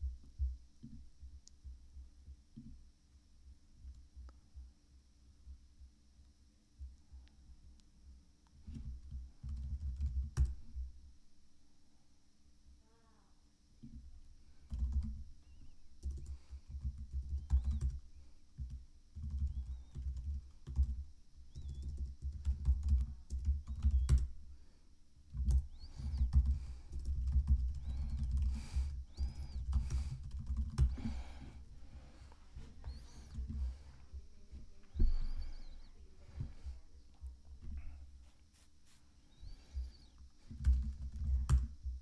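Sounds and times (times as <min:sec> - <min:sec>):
typing on computer keyboard: 0:08.7 - 0:10.6, 0:14.7 - 0:15.2, 0:16.0 - 0:18.0, 0:18.6 - 0:24.3, 0:25.3 - 0:31.0, 0:40.5 - 0:41.8.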